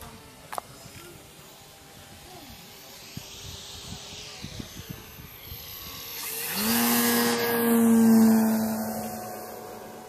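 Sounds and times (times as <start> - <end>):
model jet flying past: 0.0 - 10.0.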